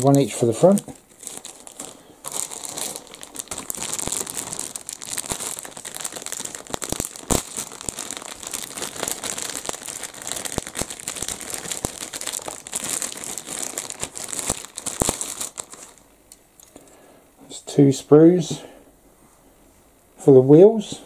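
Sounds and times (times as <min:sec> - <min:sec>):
plastic bag crinkling: 0:00.0 - 0:16.8.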